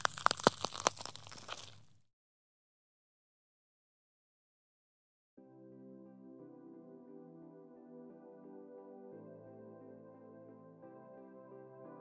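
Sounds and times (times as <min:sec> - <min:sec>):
crackling clicks: 0:00.0 - 0:01.9.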